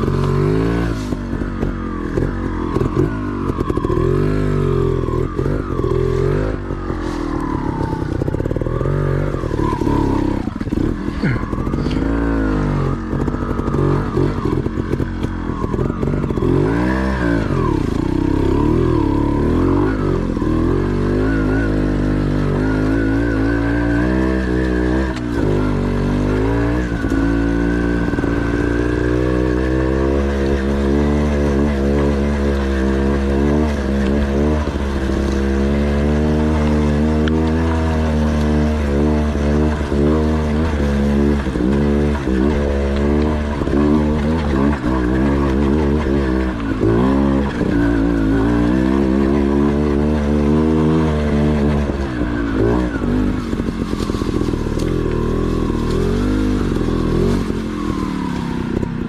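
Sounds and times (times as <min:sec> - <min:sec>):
dirt bike engine revving: 0:00.0 - 0:59.0.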